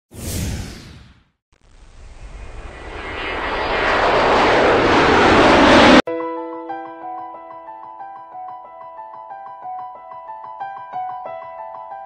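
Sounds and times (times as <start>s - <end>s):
noise riser: 0.1s - 6.0s
whoosh falling in pitch: 0.1s - 6.0s.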